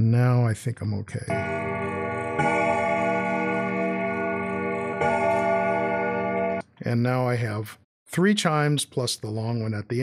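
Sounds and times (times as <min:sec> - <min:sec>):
clock chimes deep ringing: 0:01.3 - 0:06.6.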